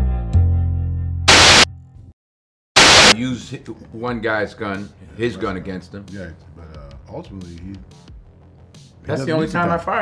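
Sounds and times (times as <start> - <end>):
static hiss bursts: 1.3 - 1.7, 2.8 - 3.2.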